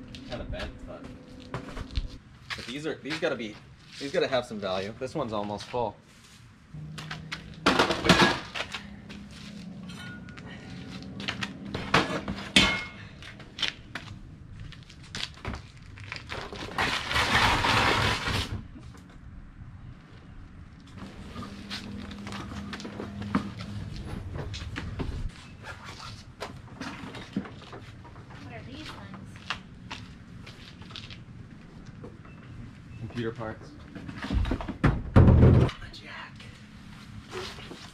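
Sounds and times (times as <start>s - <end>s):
objects knocking and clattering: 7.0s - 8.8s, 33.9s - 35.8s.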